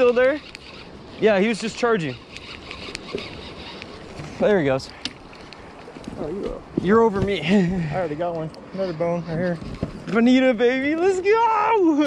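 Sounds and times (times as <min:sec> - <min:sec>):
wind: 0:00.0 - 0:12.0.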